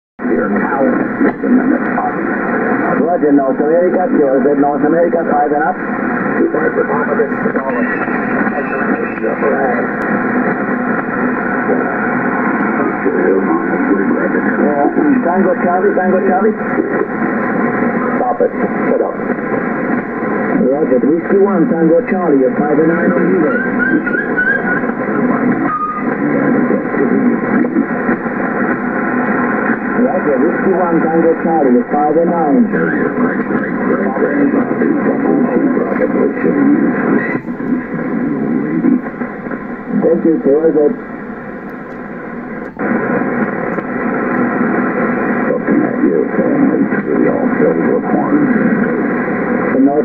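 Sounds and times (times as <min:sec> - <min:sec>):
radio band noise and hiss: 0:00.2 - 0:50.0.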